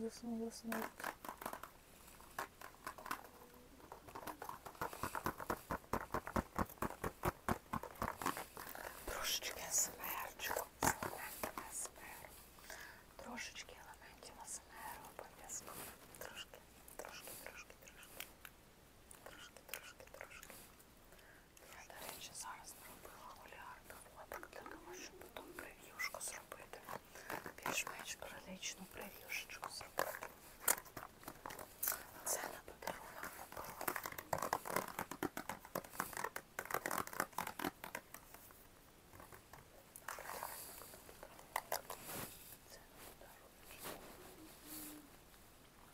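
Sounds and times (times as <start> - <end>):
soft whispering: 0.0 - 6.9, 8.0 - 18.5, 19.1 - 38.5, 39.1 - 45.2
scratchy clicks and taps: 0.6 - 11.8, 29.0 - 40.6.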